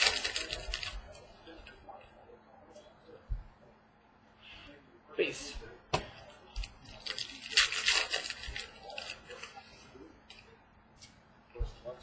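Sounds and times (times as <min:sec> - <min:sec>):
foil wrapper tearing and crinkling: 0:00.0 - 0:01.0, 0:06.9 - 0:09.6.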